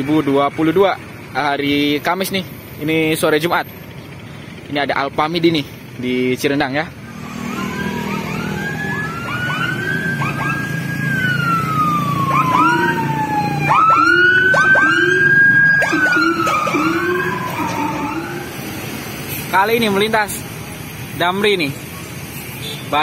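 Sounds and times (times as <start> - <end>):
low rumble of passing traffic: 0.0 - 23.0
police sirens wailing: 7.0 - 19.3
siren whoops: 7.2 - 18.8.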